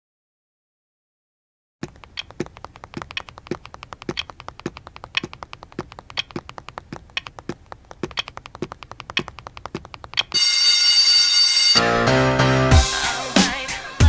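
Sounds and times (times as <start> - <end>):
rapid ticking clicks: 1.8 - 10.4
loud music: 11.7 - 14.0.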